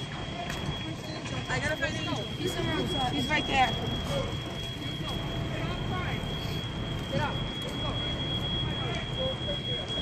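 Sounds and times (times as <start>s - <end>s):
constant high-pitched tone: 0.0s - 10.0s
fire engine low rumble: 0.0s - 10.0s.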